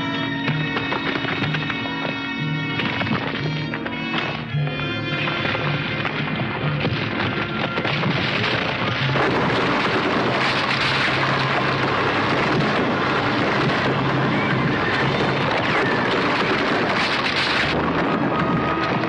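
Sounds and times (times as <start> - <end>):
rockslide roar: 0.0 - 19.0.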